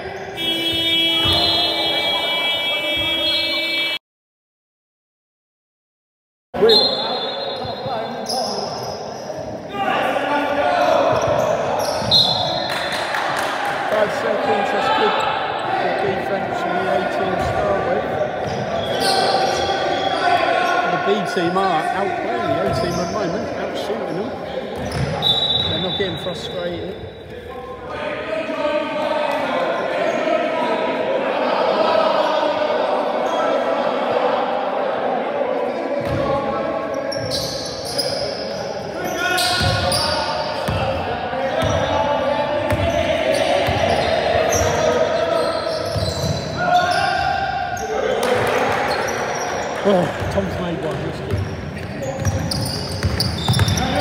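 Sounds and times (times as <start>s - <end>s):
basketball bouncing on wooden floor: 53.0s - 53.8s.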